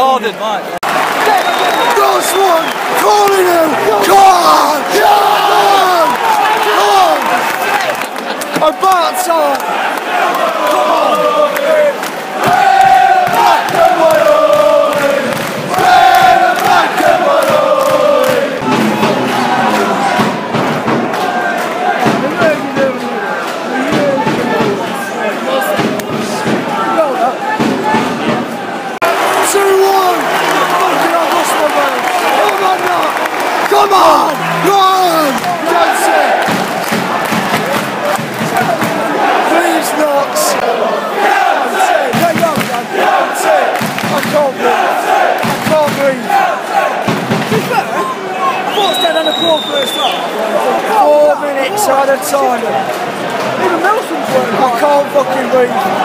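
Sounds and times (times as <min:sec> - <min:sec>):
football crowd cheering and chanting: 0:00.0 - 0:56.0.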